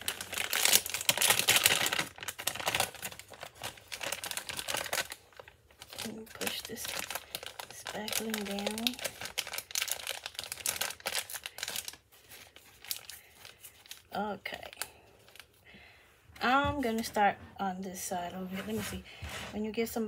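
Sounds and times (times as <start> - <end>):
plastic piping bag crinkling: 0.0 - 15.8.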